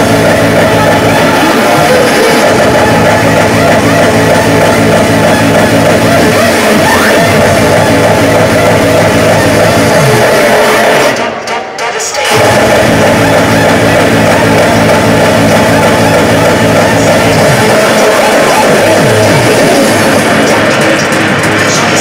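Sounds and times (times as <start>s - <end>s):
hardcore techno music: 0.0s - 22.0s
pounding bass line: 0.0s - 22.0s.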